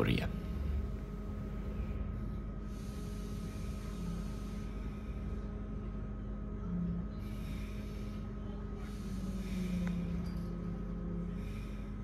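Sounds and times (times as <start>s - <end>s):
constant hums: 0.0s - 12.0s
train cabin low rumble: 0.0s - 12.0s.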